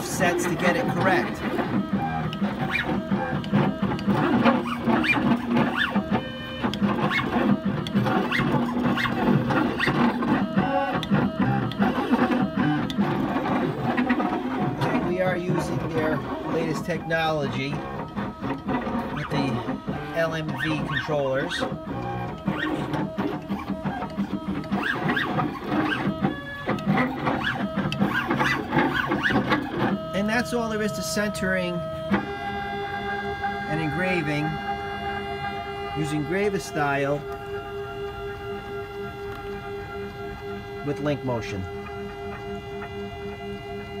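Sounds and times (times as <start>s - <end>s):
stepper motors whining: 0.0s - 44.0s
pulsing low hum: 33.2s - 44.0s.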